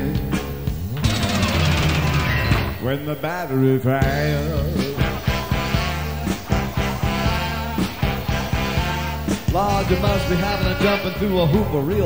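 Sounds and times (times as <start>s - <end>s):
rock band playing: 0.0s - 3.0s, 4.0s - 12.0s
person singing: 2.8s - 7.9s, 9.4s - 12.0s.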